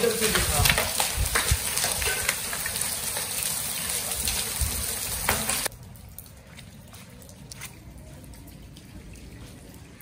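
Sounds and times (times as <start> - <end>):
heavy rain on concrete: 0.0 - 10.0.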